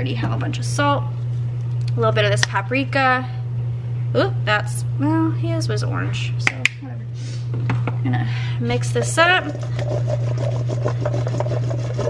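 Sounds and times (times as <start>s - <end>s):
potatoes scraping metal bowl: 8.8s - 12.0s.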